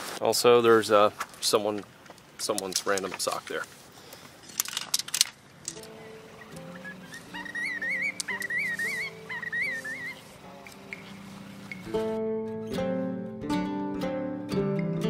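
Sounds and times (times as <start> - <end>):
tent poles knocking: 4.5 - 12.1
background music with warbling melody: 5.7 - 15.0.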